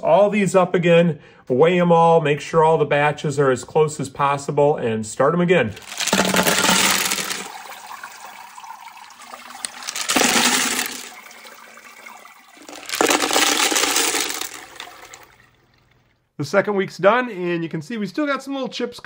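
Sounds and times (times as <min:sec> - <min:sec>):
rocks clattering in metal colander: 0:05.8 - 0:07.5, 0:09.6 - 0:11.1, 0:12.6 - 0:15.2
slurry running through: 0:05.8 - 0:07.5, 0:09.6 - 0:11.1.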